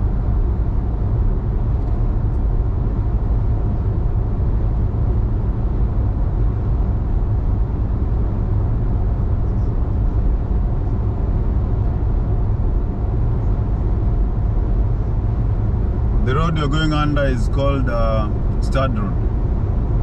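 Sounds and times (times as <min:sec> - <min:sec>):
road and engine rumble inside car: 0:00.0 - 0:20.0.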